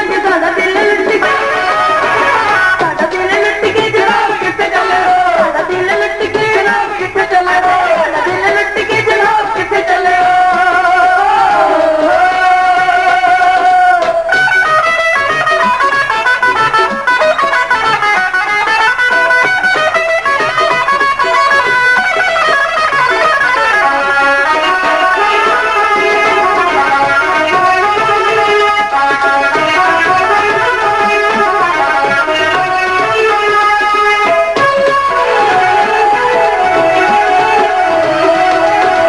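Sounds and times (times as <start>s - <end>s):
steady percussion: 0.0s - 39.0s
plucked string melodic runs: 12.6s - 39.0s.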